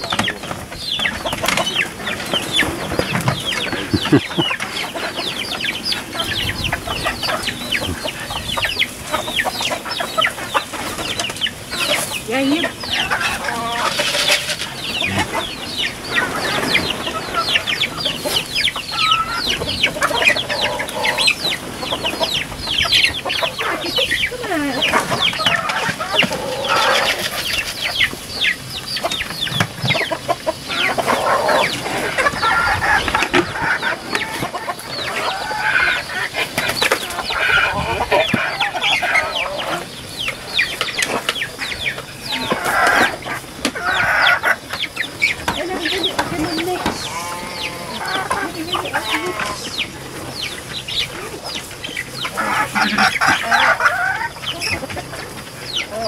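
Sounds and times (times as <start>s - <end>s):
chickens clucking: 0.0s - 56.0s.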